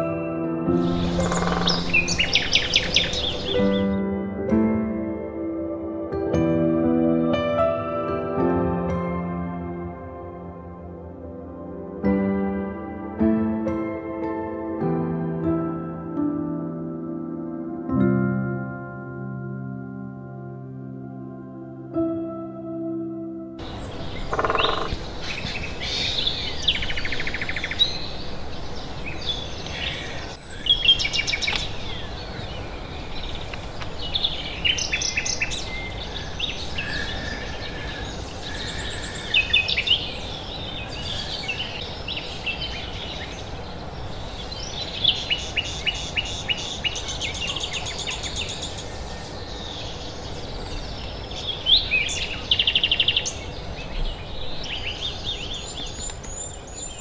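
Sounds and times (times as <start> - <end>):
birds chirping and trilling: 0.0 - 4.2, 23.6 - 57.0
steady background hiss: 23.6 - 57.0.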